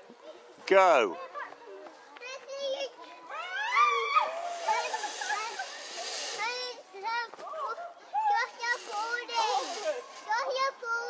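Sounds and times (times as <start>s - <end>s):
zip-line trolley hissing on cable: 3.4s - 7.3s, 8.2s - 11.0s.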